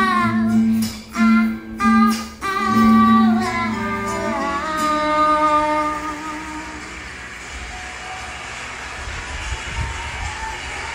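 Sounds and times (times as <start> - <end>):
song held notes: 0.0 - 10.9.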